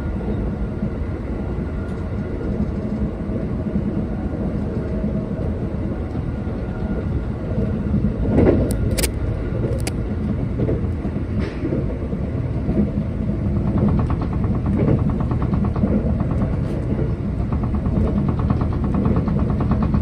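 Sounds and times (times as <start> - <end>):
train wheels rumbling on rail: 0.0 - 20.0
sharp clicks: 8.7 - 9.2.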